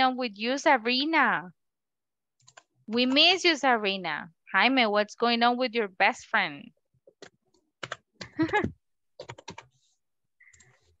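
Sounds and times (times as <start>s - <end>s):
computer keyboard typing: 2.4s - 3.4s, 7.1s - 9.8s, 10.4s - 11.0s.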